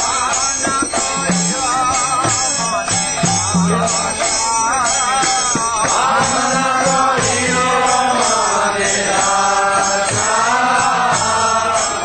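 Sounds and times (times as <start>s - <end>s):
jingling percussion: 0.0s - 12.0s
voices chanting a melody: 0.0s - 12.0s.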